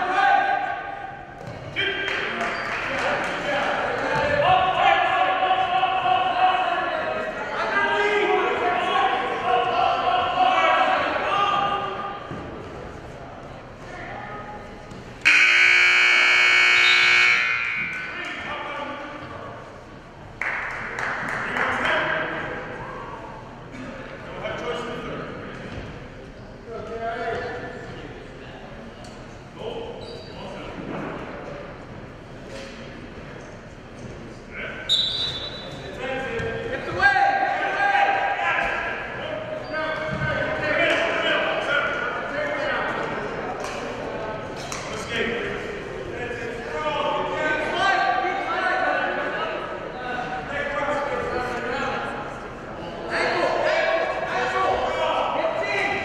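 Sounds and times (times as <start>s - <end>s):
people shouting in a gym: 0.0s - 2.5s, 3.7s - 12.3s
scoreboard buzzer: 15.2s - 17.9s.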